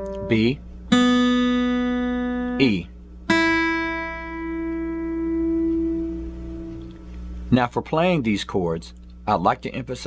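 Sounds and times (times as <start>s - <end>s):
acoustic guitar note ringing: 0.0s - 7.7s.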